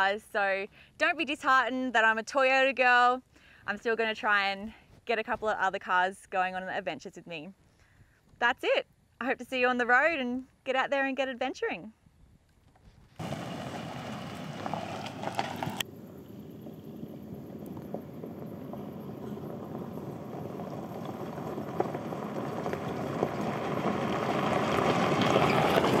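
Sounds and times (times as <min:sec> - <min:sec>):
tyres on gravel and engine: 0:13.0 - 0:26.0.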